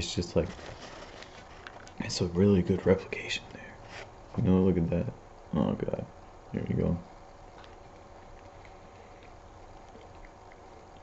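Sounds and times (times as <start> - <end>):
low room hum: 0.0 - 11.0
faint chewing: 0.4 - 2.1, 7.5 - 11.0
wet mouth clicks: 7.6 - 11.0.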